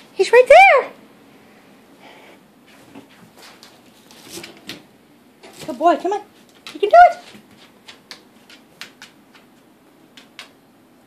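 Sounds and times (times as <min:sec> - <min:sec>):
faint taps and rustles: 0:02.7 - 0:10.6.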